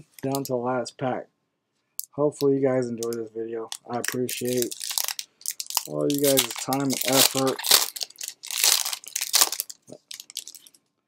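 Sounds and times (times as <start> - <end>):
foil wrapper crinkling: 3.7 - 10.8.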